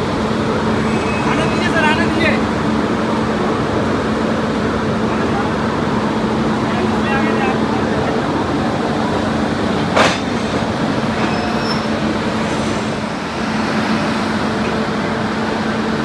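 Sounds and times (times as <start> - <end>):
locomotive mechanical hum: 0.0 - 16.0.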